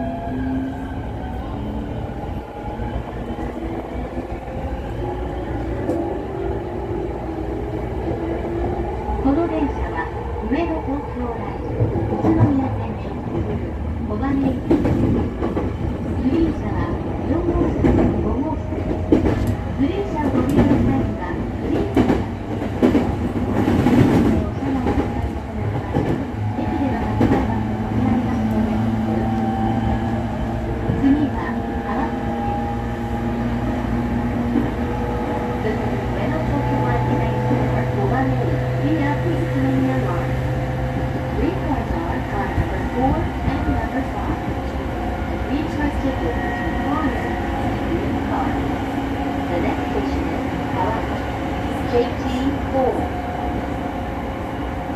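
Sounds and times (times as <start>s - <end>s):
train wheels rumbling on rail: 0.0s - 54.9s.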